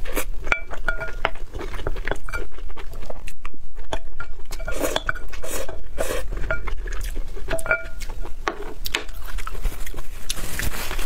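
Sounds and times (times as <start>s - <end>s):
paper tissue rustling: 9.5s - 11.0s.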